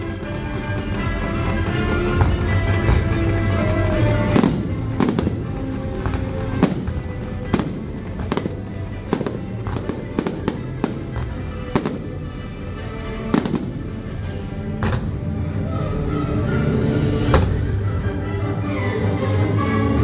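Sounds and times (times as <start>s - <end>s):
fireworks bursting: 0.0s - 15.3s
music: 0.0s - 20.0s.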